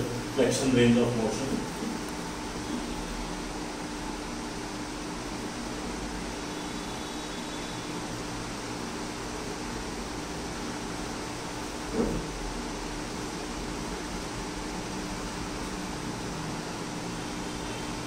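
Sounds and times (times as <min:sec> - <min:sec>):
room ventilation hum: 0:00.0 - 0:18.0.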